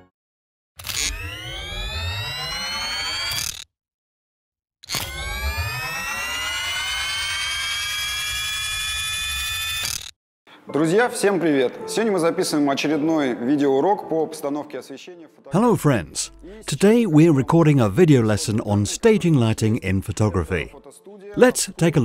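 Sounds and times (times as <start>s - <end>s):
electronic rising swell: 1.0s - 3.4s.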